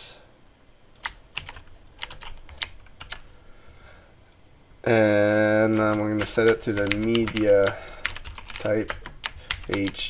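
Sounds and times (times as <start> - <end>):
computer keyboard clicks: 0.9 - 3.2, 5.7 - 10.0.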